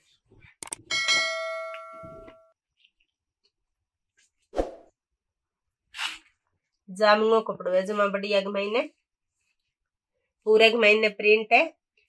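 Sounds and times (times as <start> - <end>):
metallic ding: 0.9 - 2.5.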